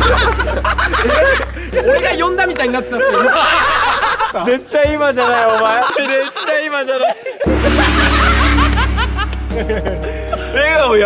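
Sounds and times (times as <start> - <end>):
background music: 0.0 - 6.4, 7.4 - 11.0
men laughing: 0.0 - 10.5.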